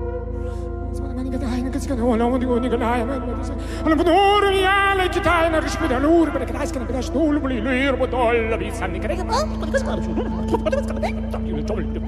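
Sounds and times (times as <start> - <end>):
steady low drone: 0.0 - 12.0.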